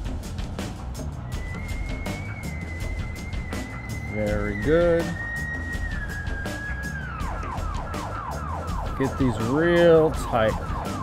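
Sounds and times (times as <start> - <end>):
low traffic rumble: 0.0 - 11.0
emergency vehicle siren: 1.3 - 11.0.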